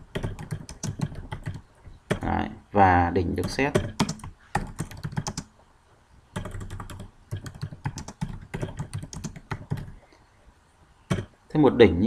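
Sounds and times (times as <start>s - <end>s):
computer keyboard typing: 0.0s - 2.3s, 3.4s - 5.5s, 6.4s - 10.1s, 11.1s - 11.3s.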